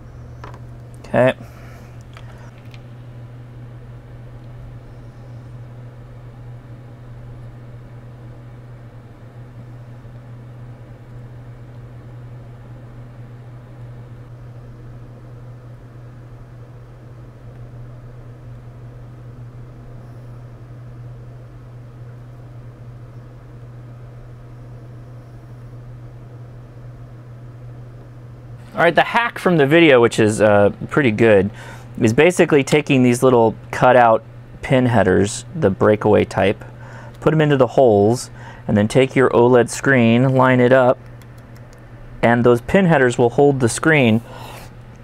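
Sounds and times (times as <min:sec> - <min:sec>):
steady low hum with hiss: 0:00.0 - 0:45.0.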